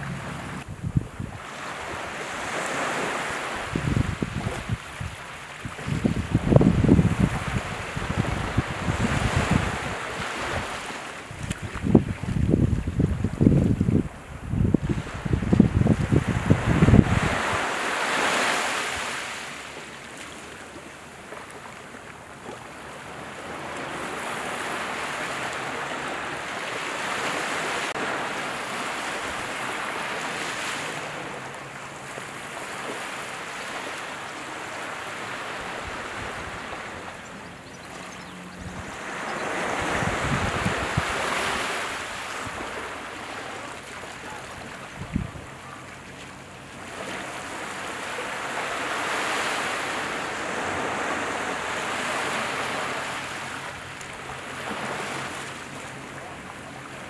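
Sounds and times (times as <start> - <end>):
sea waves breaking: 0.0 - 57.0.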